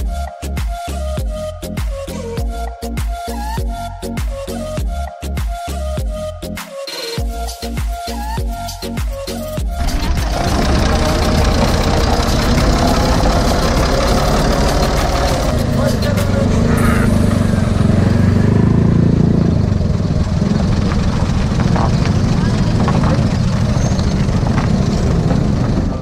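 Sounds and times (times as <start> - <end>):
tractor diesel engine idling: 9.7 - 26.0
people talking: 14.8 - 17.3, 21.7 - 23.4.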